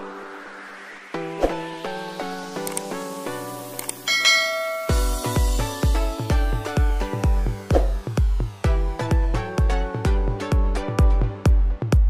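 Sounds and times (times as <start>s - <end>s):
plucked background music: 0.0s - 12.0s
bright bell-like chime: 4.1s - 5.7s
electronic beat with bass thumps: 4.2s - 12.0s.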